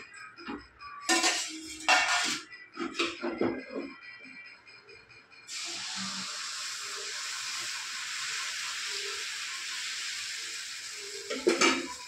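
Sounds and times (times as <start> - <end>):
spatula scraping iron griddle: 1.1 - 2.4
spatula clattering on steel plate: 1.1 - 3.4.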